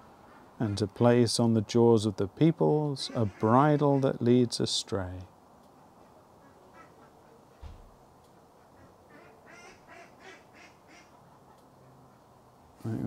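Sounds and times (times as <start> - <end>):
ducks quacking: 3.0 - 4.2, 6.4 - 7.4, 8.6 - 12.3
soft low thump: 7.6 - 8.0.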